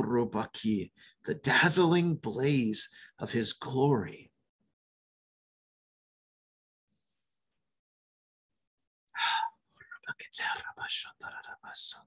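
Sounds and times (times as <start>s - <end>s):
man whispering: 9.2s - 12.0s.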